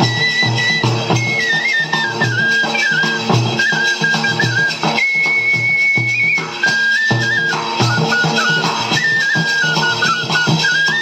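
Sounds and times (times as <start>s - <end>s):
flute warbling melody: 0.0s - 11.0s
small drum beats: 0.0s - 11.0s.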